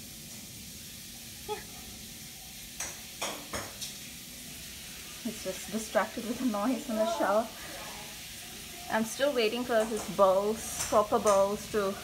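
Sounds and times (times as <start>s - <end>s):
shower spraying water: 0.0s - 12.0s.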